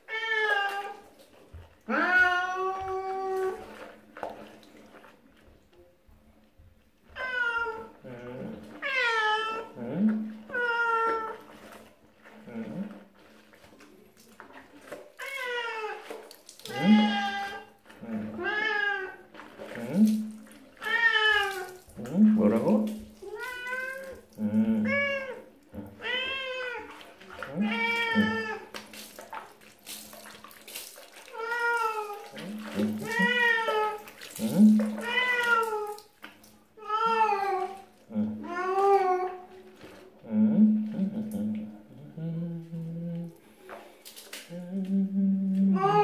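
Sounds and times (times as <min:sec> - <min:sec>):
cat meowing: 0:01.9 - 0:03.6, 0:07.2 - 0:07.9, 0:10.5 - 0:11.4, 0:16.7 - 0:17.7, 0:18.4 - 0:19.2, 0:20.8 - 0:21.8, 0:24.8 - 0:25.4, 0:26.0 - 0:26.9, 0:27.5 - 0:28.6, 0:32.9 - 0:34.0, 0:34.9 - 0:36.0, 0:36.8 - 0:37.8, 0:38.4 - 0:39.4, 0:45.7 - 0:46.0.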